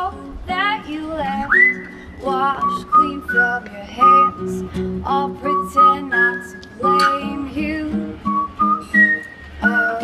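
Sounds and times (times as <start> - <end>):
acoustic guitar: 0.0 - 10.0
wordless sung notes: 0.0 - 10.0
person whistling: 1.5 - 2.0, 5.5 - 7.0, 8.3 - 10.0.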